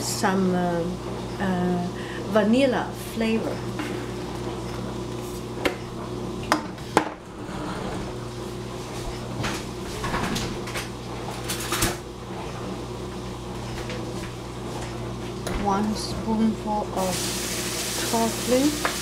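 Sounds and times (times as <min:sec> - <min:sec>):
steady low hum: 0:00.0 - 0:16.8.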